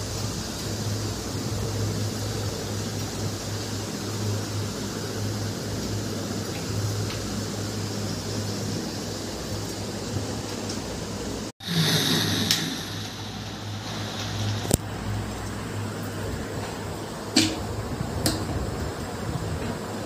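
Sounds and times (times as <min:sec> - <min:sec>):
steady hiss: 0:00.0 - 0:20.0
low hum: 0:11.6 - 0:15.3.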